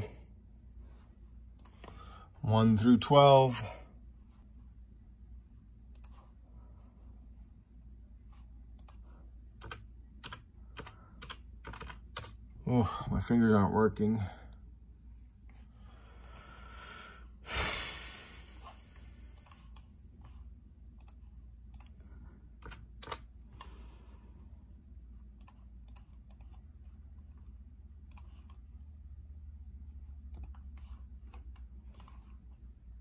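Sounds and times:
steady low hum: 0.0 - 33.0
clicks: 1.5 - 2.0
computer keyboard keystrokes: 8.8 - 12.4, 22.6 - 23.7, 25.4 - 26.6, 30.3 - 32.3.

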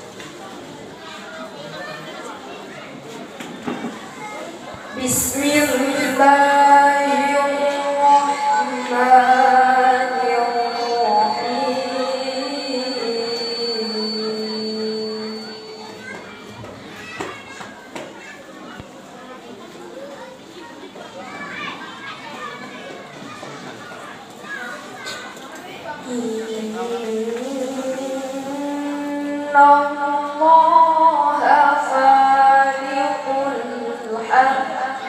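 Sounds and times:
girl reciting melodically: 4.1 - 16.5, 26.0 - 35.0.

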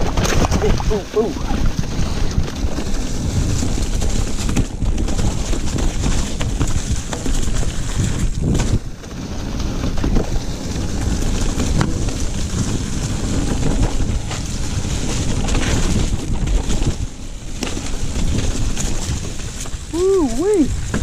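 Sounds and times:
sharp knocks over rocks: 0.0 - 2.9
bike tyres rumbling and rattling: 0.0 - 21.0
wind buffeting microphone: 0.0 - 21.0.

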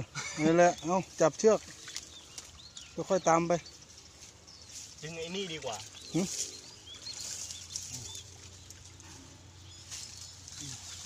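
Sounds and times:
pond water sloshing and splashing: 0.0 - 11.0.

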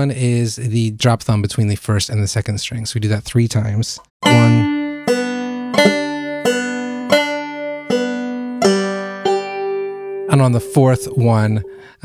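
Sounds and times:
banjo plucked fingerstyle: 4.2 - 11.9.

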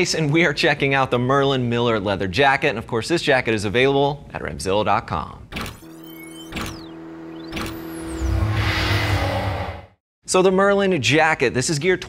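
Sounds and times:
sharp electronic hit: 5.5 - 10.0
held synth note: 5.9 - 9.9
sweeping whooshes: 6.8 - 10.0
low rumble: 7.9 - 10.0.

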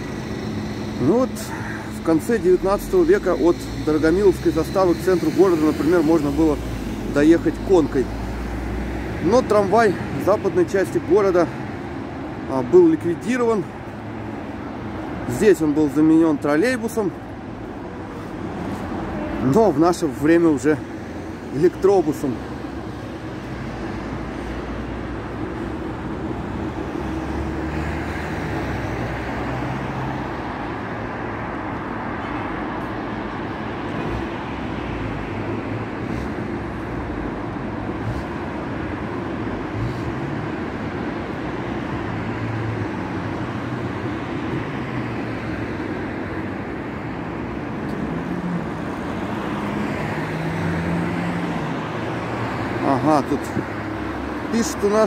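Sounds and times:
cars passing: 0.0 - 55.0.

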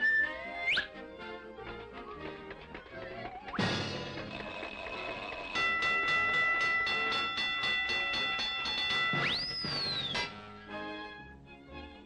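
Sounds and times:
cartoon train chugging: 3.1 - 10.2.

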